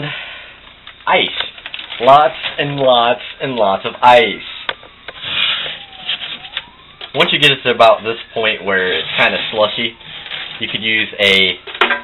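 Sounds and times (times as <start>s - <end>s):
scraping frost and ice: 5.2s - 6.4s.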